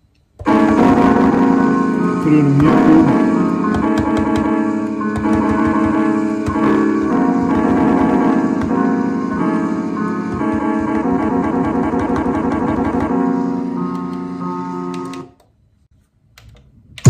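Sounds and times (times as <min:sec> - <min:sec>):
piano-like keyboard chords: 0:00.4 - 0:15.3.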